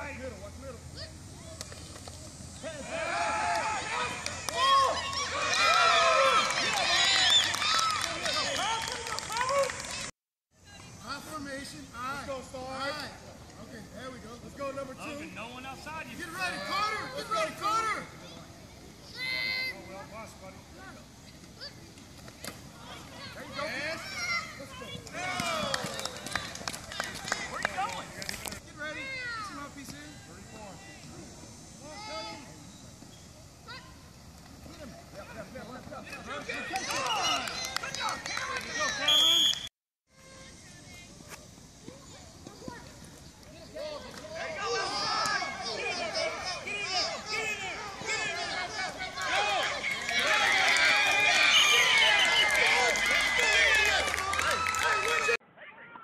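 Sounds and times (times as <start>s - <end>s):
people shouting: 2.6s - 10.0s, 22.8s - 26.4s, 43.8s - 56.0s.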